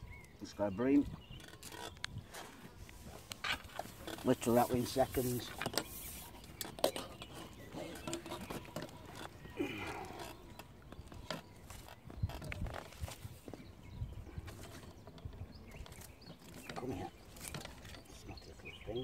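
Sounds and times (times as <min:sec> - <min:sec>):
fishing tackle clicks and knocks: 0:05.4 - 0:13.6.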